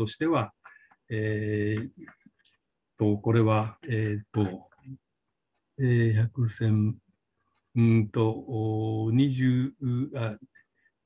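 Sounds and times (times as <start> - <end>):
man speaking: 0.0 - 2.1, 3.0 - 4.6, 5.8 - 7.0, 7.8 - 10.5.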